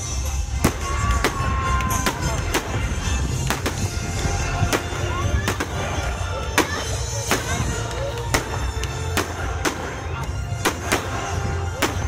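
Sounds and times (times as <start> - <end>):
fireworks shells bursting: 0.0 - 12.0.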